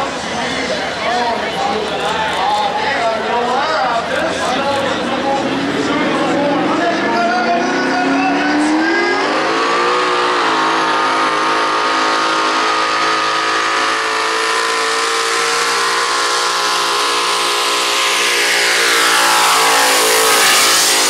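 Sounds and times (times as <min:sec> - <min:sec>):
diesel truck engine revving: 0:00.0 - 0:21.0.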